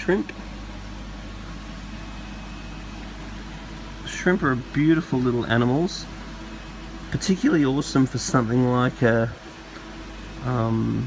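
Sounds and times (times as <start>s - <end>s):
equipment hum with hiss: 0.0s - 11.0s.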